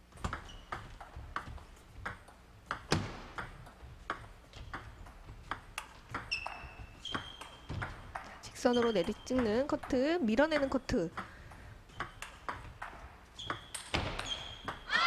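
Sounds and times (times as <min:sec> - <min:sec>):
ping pong ball clicking: 0:00.2 - 0:14.8
high squeaks: 0:06.1 - 0:07.9, 0:08.6 - 0:09.4, 0:13.4 - 0:15.0.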